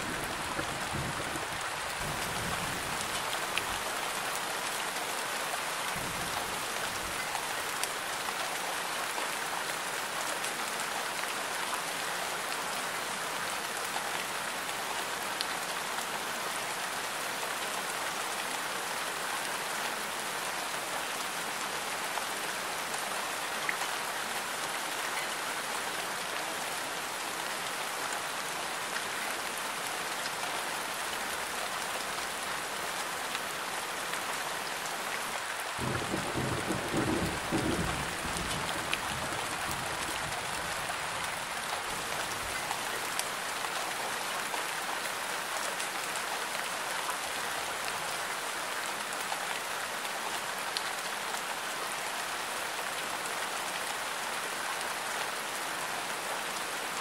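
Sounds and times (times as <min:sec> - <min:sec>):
steady rain hiss: 0:00.0 - 0:57.0.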